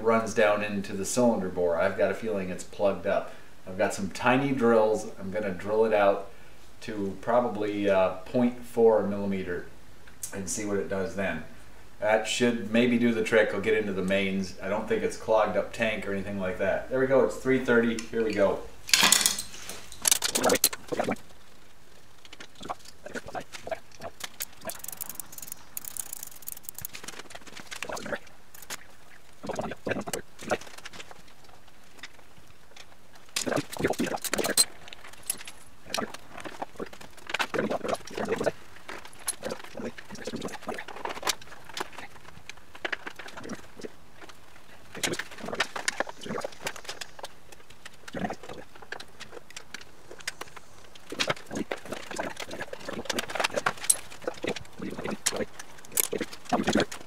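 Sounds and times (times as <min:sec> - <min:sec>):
metal tools clinking and rattling: 0:18.9 - 0:21.1, 0:24.2 - 0:27.9, 0:33.3 - 0:35.8, 0:53.2 - 0:54.7.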